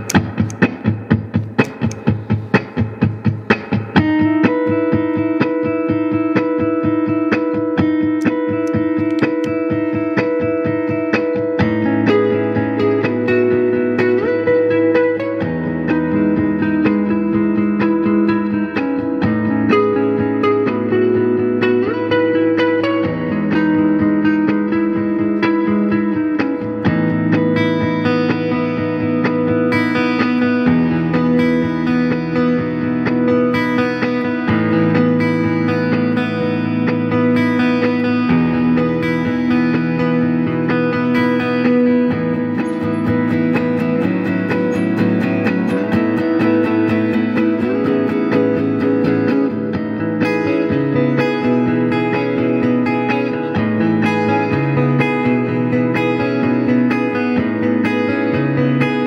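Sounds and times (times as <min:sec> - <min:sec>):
electric guitar chords and notes: 0:00.0 - 0:59.0.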